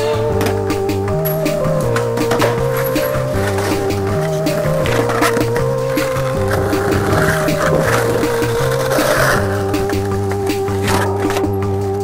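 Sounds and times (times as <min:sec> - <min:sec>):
music with bass line: 0:00.0 - 0:12.0
skateboard rolling on asphalt: 0:00.0 - 0:12.0.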